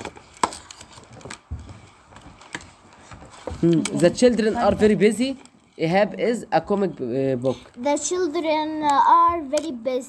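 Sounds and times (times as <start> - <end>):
handling noise: 0.0 - 5.8.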